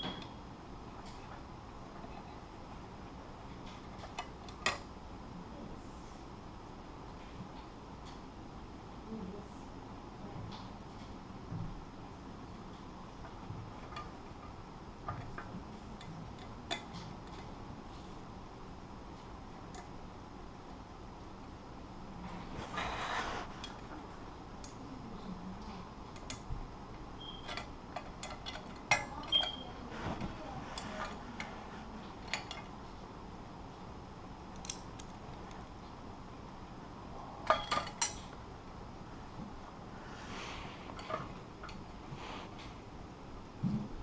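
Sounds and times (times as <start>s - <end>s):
scraping rustle: 22.3s - 23.9s.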